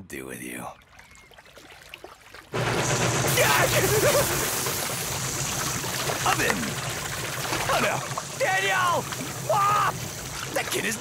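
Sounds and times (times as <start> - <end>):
water gushing and splashing: 0.8 - 11.0.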